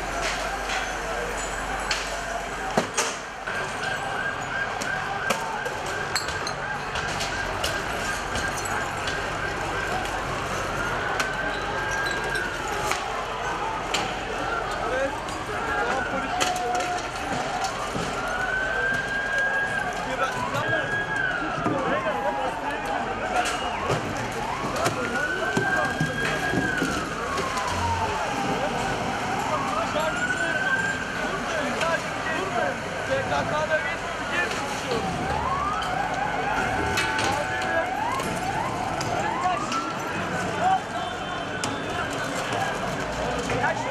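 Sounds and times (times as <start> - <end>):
crowd voices: 0.0 - 43.9
police siren wailing: 0.0 - 43.9
street noise: 0.0 - 43.9.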